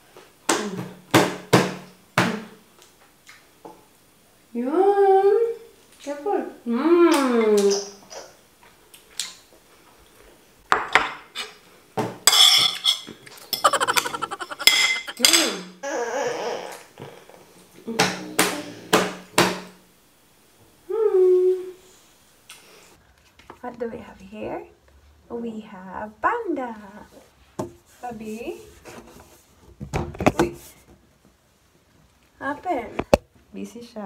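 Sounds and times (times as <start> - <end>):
wordless voice: 13.6 - 15.4.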